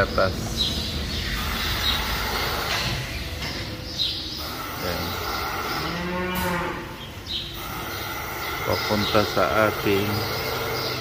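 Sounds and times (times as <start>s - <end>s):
milking machinery hum: 0.0s - 11.0s
cow mooing: 5.0s - 7.0s.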